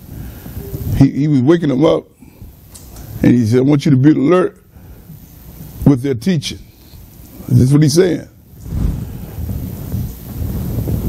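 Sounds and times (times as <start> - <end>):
low rumbling on microphone: 8.4 - 11.0.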